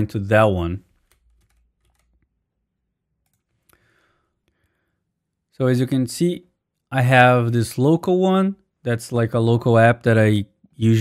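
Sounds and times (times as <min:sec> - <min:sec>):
keyboard and mouse clicks: 0:00.9 - 0:02.3, 0:03.2 - 0:03.8.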